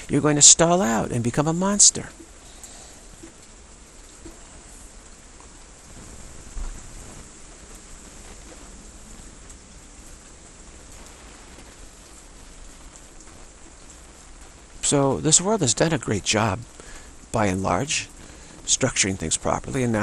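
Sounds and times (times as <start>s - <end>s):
steady heavy rain: 0.0s - 20.0s.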